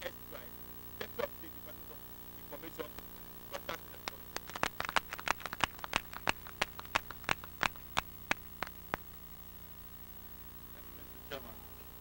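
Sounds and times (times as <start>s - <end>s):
audience hand clapping: 4.0s - 9.1s.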